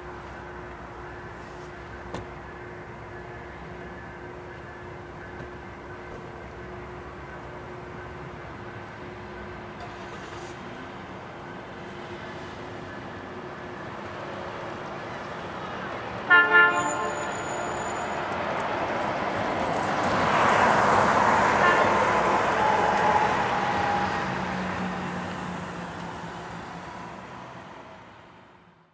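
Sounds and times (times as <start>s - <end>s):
train wheels on rails: 0.0s - 26.9s
locomotive horn toots: 16.3s - 18.2s, 21.5s - 24.2s.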